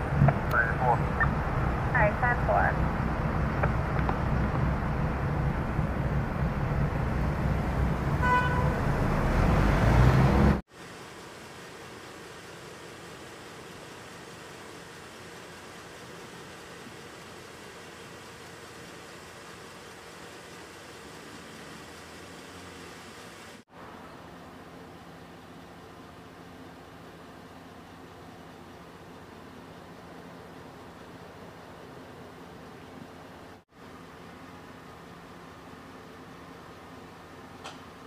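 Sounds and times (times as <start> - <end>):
vehicle engine rumble: 0.0 - 38.0
car horn toot: 8.2 - 8.9.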